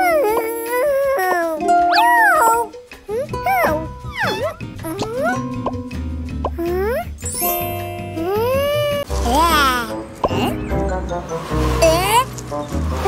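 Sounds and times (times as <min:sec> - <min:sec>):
squeaky cartoon voice whining: 0:00.0 - 0:05.4, 0:06.6 - 0:07.4, 0:08.2 - 0:10.6
background music: 0:00.0 - 0:13.0.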